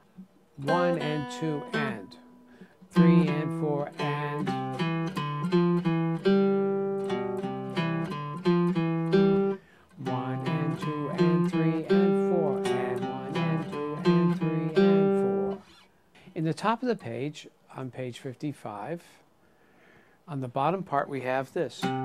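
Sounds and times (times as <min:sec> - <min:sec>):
guitar picked notes and chords: 0:00.1 - 0:15.8, 0:21.8 - 0:22.0.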